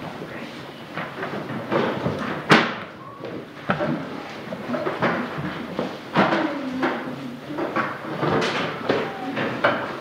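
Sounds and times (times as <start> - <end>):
knocks and bumps of students moving: 0.9 - 10.0.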